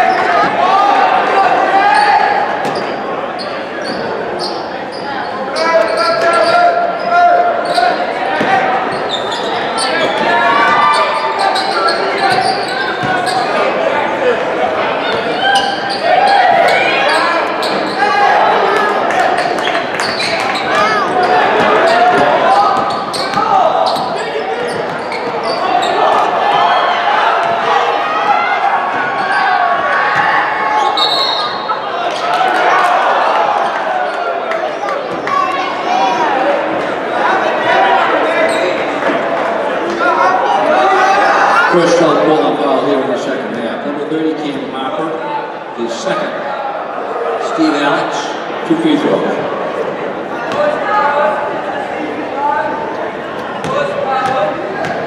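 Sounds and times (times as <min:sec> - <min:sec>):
shouting and chatter: 0:00.0 - 0:55.0.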